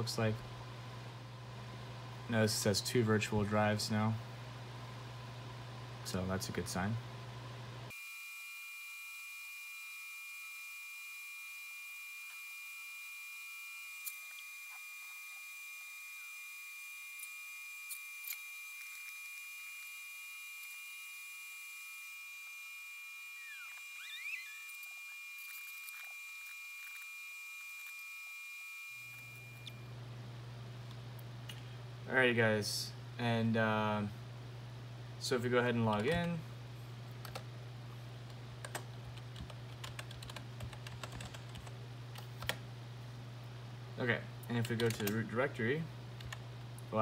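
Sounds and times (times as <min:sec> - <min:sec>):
server cooling fans whining: 0:00.0 - 0:08.0, 0:09.5 - 0:47.0.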